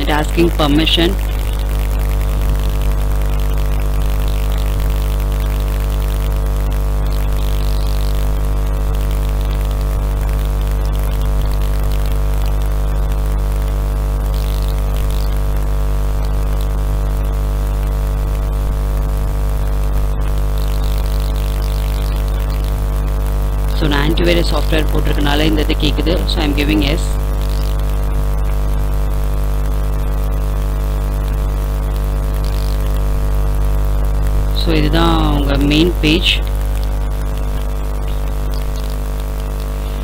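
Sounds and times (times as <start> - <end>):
electrical mains hum: 0.0 - 40.0.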